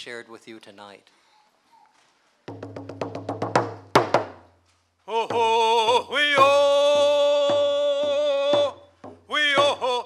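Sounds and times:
frame drum roll: 0:02.5 - 0:04.4, 0:05.2 - 0:09.8.

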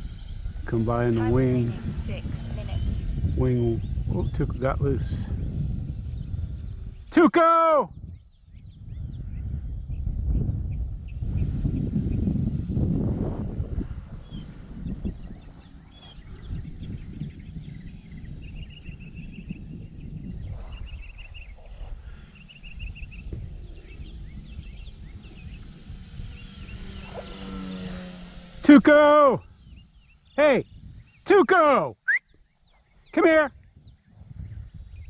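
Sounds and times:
bird chirping: 0:00.0 - 0:04.8, 0:05.8 - 0:07.1, 0:07.9 - 0:12.8, 0:13.9 - 0:35.0
wind buffeting microphone: 0:00.0 - 0:31.6, 0:32.2 - 0:35.0.

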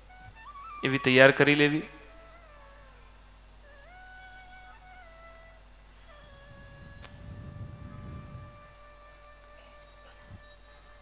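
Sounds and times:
soft music with held notes: 0:00.0 - 0:11.0
low rumble: 0:06.3 - 0:08.9.

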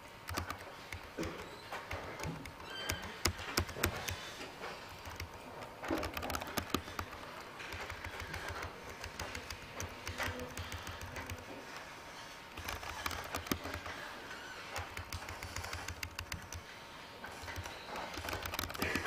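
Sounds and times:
computer keyboard typing: 0:00.0 - 0:19.0.

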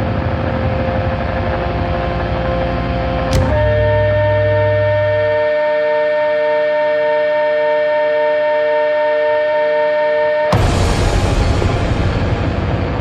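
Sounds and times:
low hum: 0:00.0 - 0:08.1
electronic drone with pulsing tone: 0:00.0 - 0:09.5.

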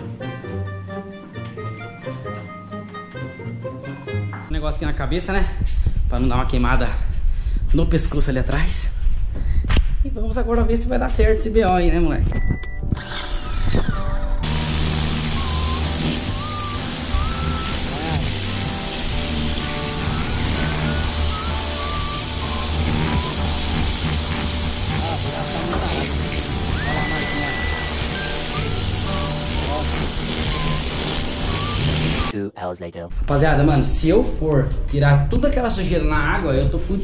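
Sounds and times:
background music: 0:00.0 - 0:04.6, 0:12.7 - 0:36.7
pressure washer spraying tiles: 0:14.4 - 0:32.3.

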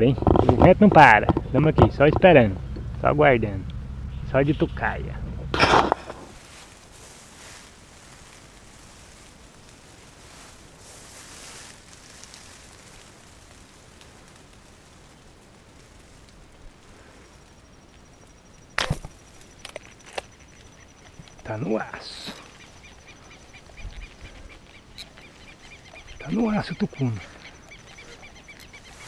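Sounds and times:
faint wind: 0:00.0 - 0:29.0.

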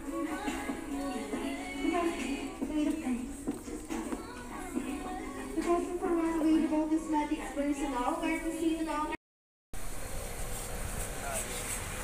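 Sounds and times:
traffic passing on road: 0:09.8 - 0:12.0.

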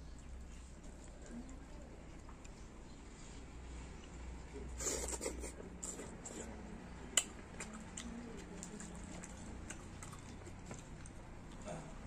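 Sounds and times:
person chewing food: 0:04.8 - 0:12.0.

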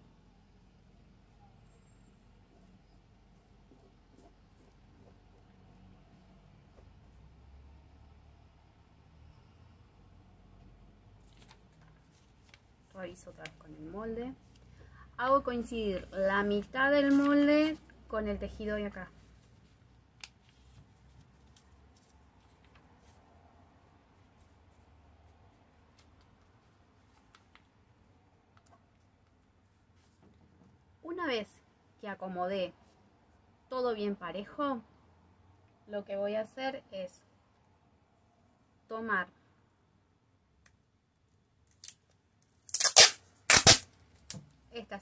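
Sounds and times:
paper handling sounds: 0:11.2 - 0:13.6, 0:19.2 - 0:23.4, 0:25.5 - 0:27.8
tape ripping off roll: 0:42.6 - 0:44.4.

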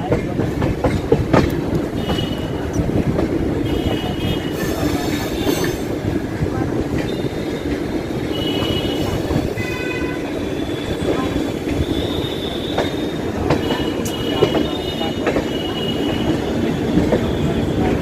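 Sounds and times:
train wheels rumbling on rail: 0:00.0 - 0:18.0.

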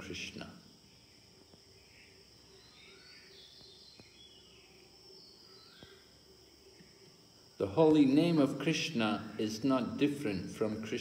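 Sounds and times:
faint high chirps: 0:00.0 - 0:08.0.

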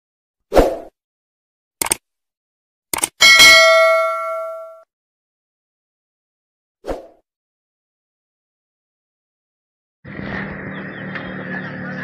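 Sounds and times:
notification bell ding: 0:03.2 - 0:04.8.

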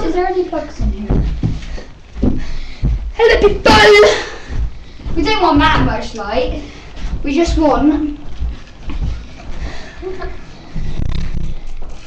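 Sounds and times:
dull thumps of footsteps: 0:00.0 - 0:12.0
rustling: 0:00.0 - 0:12.0.

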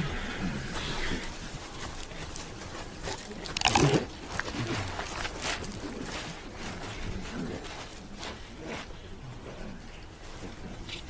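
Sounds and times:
rustling: 0:00.4 - 0:11.0.

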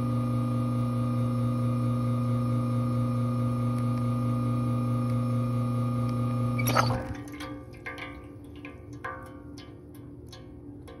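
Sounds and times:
espresso machine pump humming: 0:00.0 - 0:07.2.

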